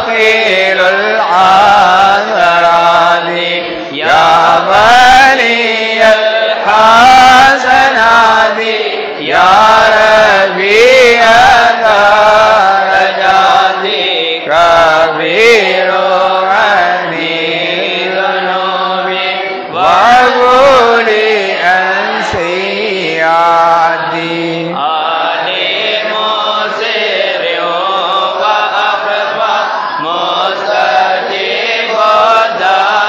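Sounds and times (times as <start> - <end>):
men chanting: 0.0 - 33.0.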